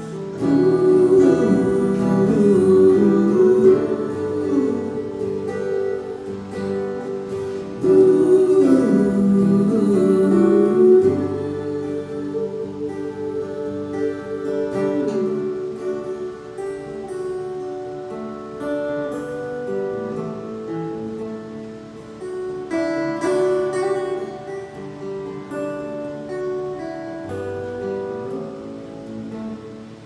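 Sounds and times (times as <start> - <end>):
acoustic guitar playing: 0.0 - 30.0.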